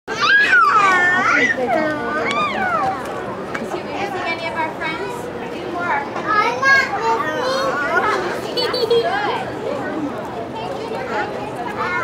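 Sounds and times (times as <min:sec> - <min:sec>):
young children chattering: 0:00.1 - 0:12.0.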